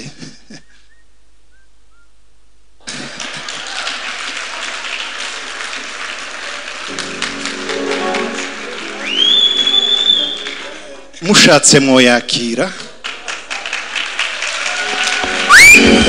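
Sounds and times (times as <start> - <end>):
congregation applauding: 2.8 - 11.6, 12.7 - 16.0
music: 6.9 - 9.6, 14.8 - 16.0.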